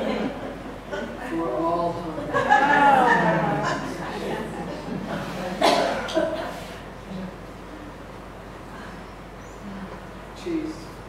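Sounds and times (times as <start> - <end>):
faint room murmur: 0.0 - 11.0
short cough: 5.6 - 6.8.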